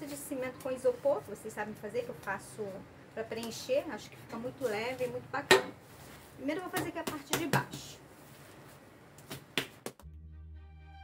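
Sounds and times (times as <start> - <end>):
hands slapping wet paste: 9.2 - 10.0.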